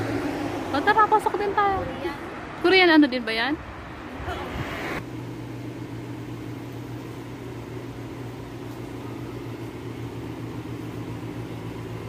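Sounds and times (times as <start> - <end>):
low machinery hum: 5.0 - 12.0.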